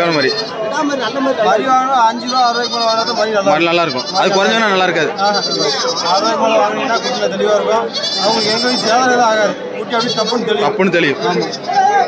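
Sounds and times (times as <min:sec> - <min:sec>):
goats bleating: 0:00.0 - 0:00.6, 0:02.1 - 0:12.0
man talking: 0:00.0 - 0:11.5.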